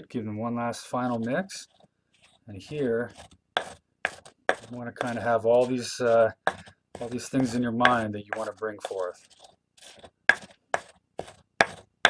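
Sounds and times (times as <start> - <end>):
stone pestle strokes in mortar: 0.8 - 12.0.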